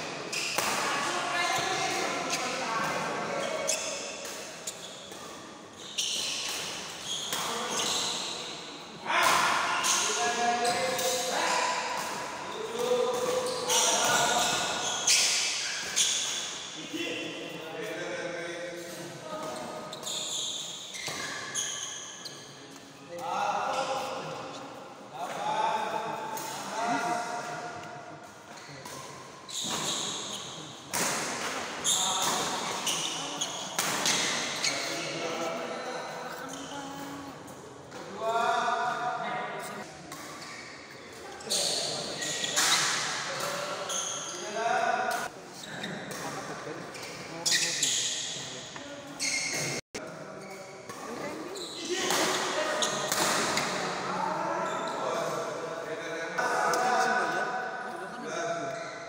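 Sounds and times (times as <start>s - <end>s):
racket hitting shuttlecock: 52.0s - 53.9s.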